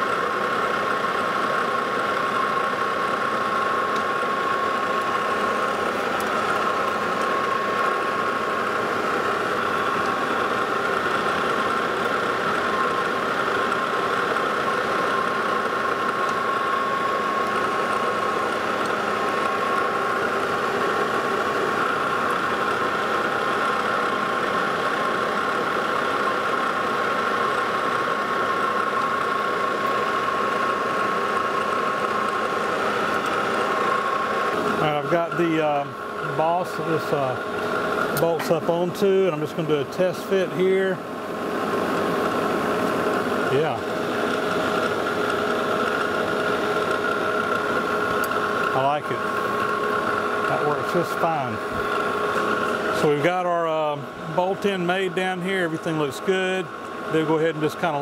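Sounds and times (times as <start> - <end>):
metal lathe running with whine: 0.0 - 58.0.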